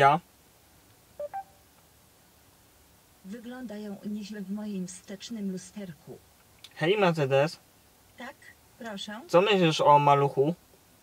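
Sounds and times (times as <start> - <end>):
short electronic beeps: 1.2 - 1.6.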